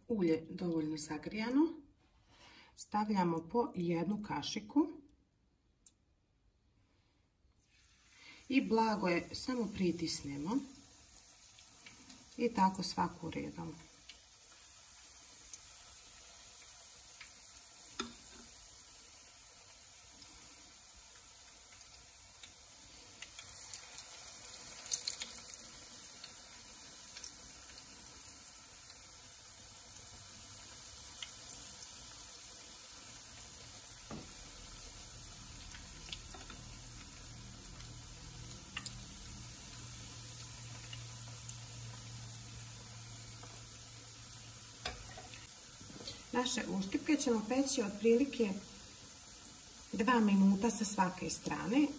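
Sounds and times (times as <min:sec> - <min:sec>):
batter sizzling in hot oil: 0:07.6 - 0:51.9
metal spoon clicking on pan: 0:18.0 - 0:18.2.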